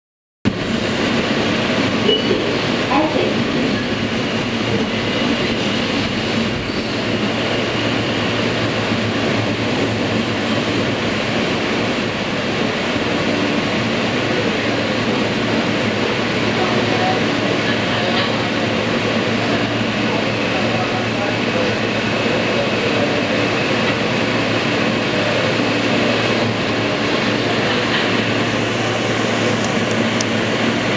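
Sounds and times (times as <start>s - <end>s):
subway car wheels rumbling: 0.5s - 30.9s.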